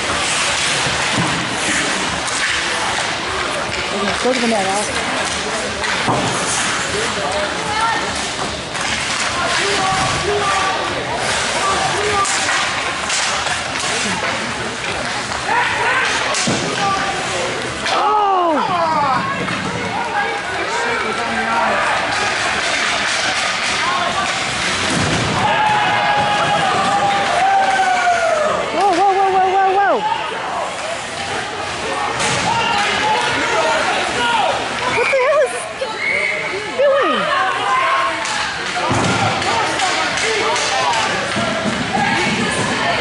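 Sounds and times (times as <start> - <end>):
hockey sticks and puck clatter: 0.0 - 29.7, 30.7 - 35.2, 37.3 - 43.0
spectators shouting: 15.4 - 43.0.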